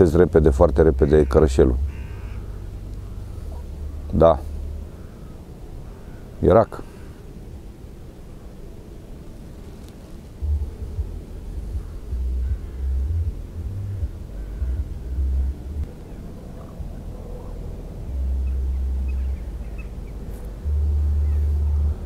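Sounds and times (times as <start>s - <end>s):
faint steady background noise: 0.0s - 22.0s
wind buffeting microphone: 0.0s - 22.0s.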